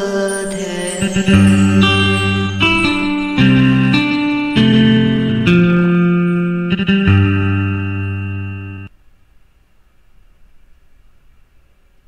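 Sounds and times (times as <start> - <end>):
held guitar chord: 0.0 - 8.9.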